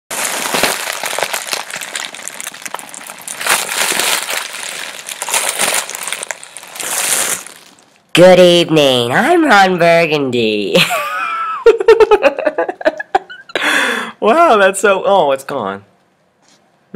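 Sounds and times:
foil balloon crinkling: 0.1s - 8.1s.

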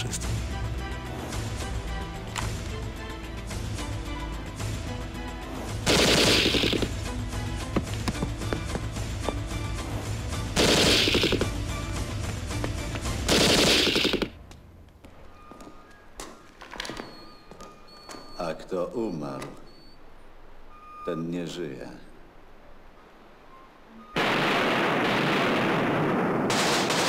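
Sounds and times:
film score music: 0.0s - 17.9s
rapid automatic gunfire: 5.9s - 6.9s, 10.6s - 11.4s, 13.3s - 14.3s, 26.5s - 27.0s.

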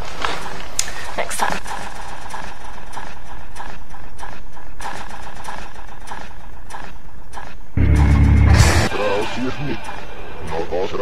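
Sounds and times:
deep synth tone: 7.8s - 10.4s.

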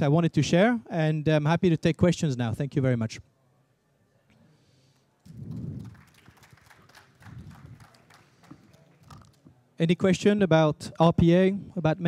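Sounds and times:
low muffled noise: 2.6s - 12.0s
sparse audience clapping: 5.2s - 9.5s.

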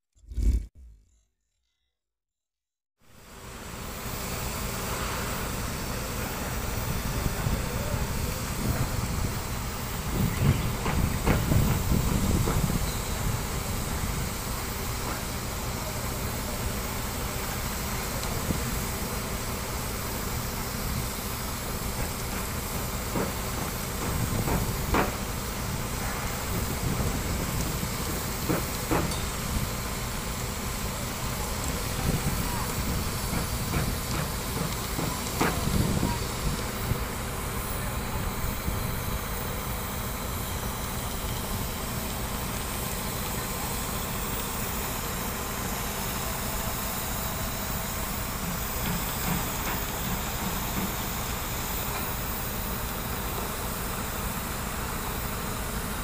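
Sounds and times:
concrete pouring down chute: 3.2s - 56.0s
mixer truck running: 3.2s - 56.0s.

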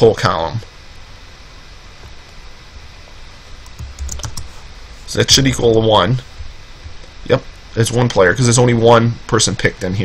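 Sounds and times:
faint room hiss: 0.0s - 10.0s
computer keyboard keystrokes: 3.6s - 4.5s.

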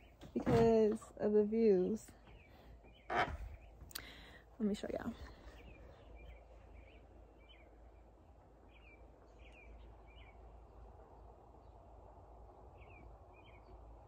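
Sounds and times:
low steady rumble: 0.0s - 14.0s.

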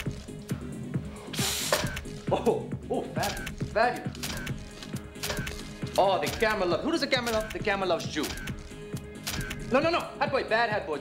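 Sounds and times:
background music: 0.0s - 11.0s
camera shutter click: 1.6s - 2.2s, 4.2s - 6.6s, 8.2s - 9.7s
camera winding ratchet: 3.2s - 7.6s, 8.2s - 9.7s.

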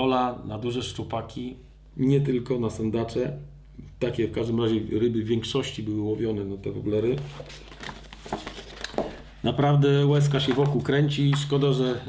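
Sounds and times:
catalogue pages rustling: 6.6s - 12.0s.

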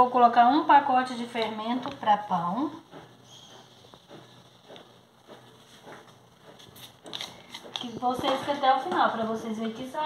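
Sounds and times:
packet rustling: 6.6s - 8.1s.

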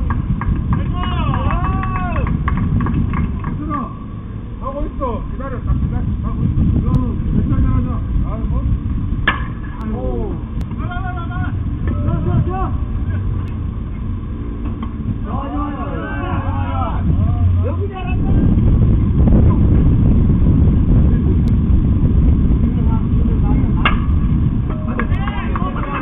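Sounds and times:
low rumble: 0.0s - 26.0s
bat hitting ball: 9.2s - 9.8s, 23.8s - 25.8s
players calling out: 15.2s - 18.3s.

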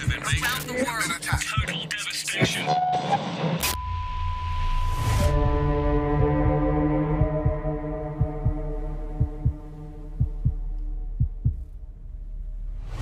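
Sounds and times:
heartbeat-like double thump: 6.2s - 11.9s.

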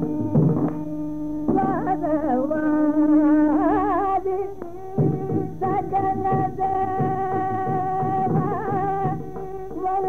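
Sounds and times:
drum strokes: 0.0s - 2.2s, 3.5s - 10.0s.

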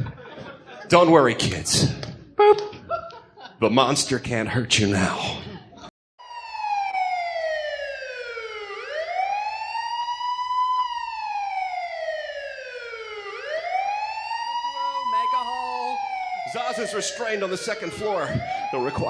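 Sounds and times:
police siren wailing: 6.2s - 19.0s
person speaking: 14.8s - 19.0s.

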